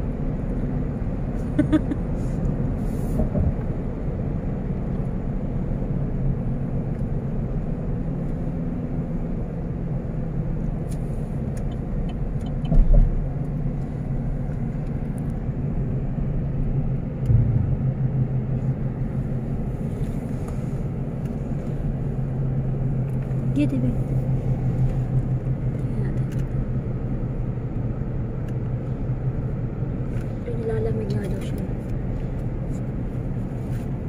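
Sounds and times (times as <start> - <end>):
car interior road rumble: 0.0 - 34.0
short low thump: 17.2 - 18.9.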